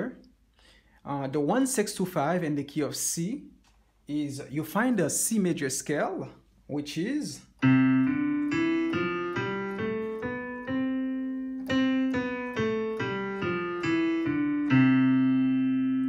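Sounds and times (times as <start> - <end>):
digital piano playing a scale: 7.6 - 16.0.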